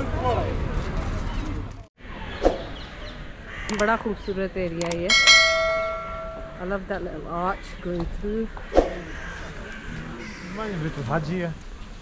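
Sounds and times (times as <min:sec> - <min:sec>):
people's voices: 0:03.7 - 0:11.3
crow cawing: 0:09.0 - 0:10.8.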